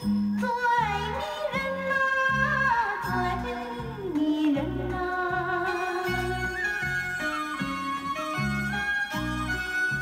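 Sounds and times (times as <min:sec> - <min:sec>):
pop song from vinyl record: 0:00.0 - 0:08.0.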